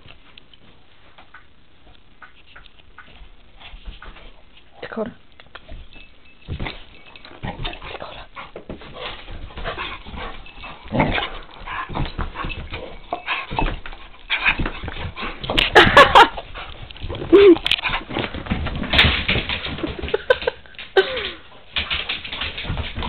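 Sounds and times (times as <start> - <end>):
dogs scuffling while playing: 2.2 - 4.8, 5.6 - 23.0.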